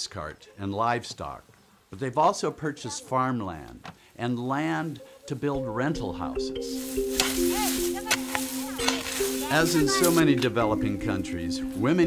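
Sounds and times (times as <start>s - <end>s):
music with long held notes: 6.0s - 12.0s.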